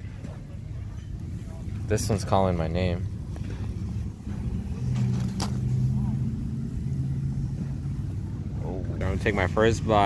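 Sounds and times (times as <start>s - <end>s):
low engine hum: 1.1s - 10.0s.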